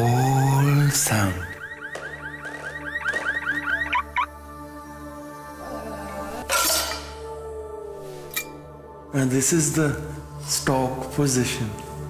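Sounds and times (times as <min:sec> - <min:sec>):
car alarm chirping warble: 0:00.1 - 0:04.3.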